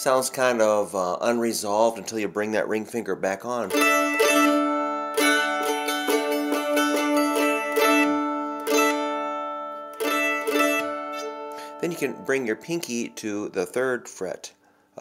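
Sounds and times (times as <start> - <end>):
mandolin chords strummed: 3.4 - 14.0.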